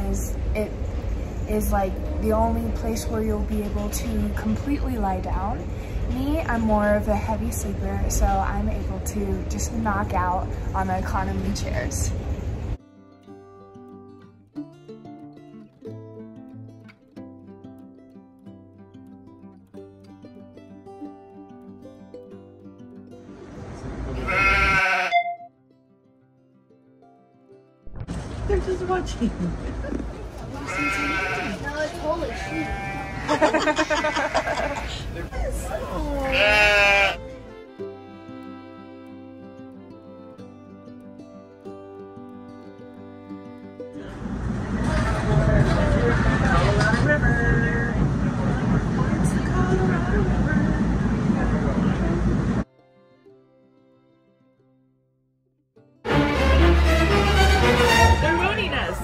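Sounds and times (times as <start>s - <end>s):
quiet background music: 0.0s - 12.2s, 35.2s - 52.1s, 56.1s - 59.0s
sheep bleating: 24.2s - 25.5s, 30.6s - 35.1s, 35.9s - 37.3s
train rumble from inside: 44.0s - 52.6s.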